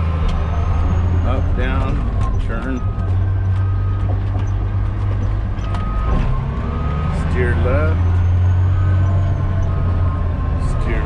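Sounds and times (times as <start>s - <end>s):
diesel engine drone: 0.0s - 11.0s.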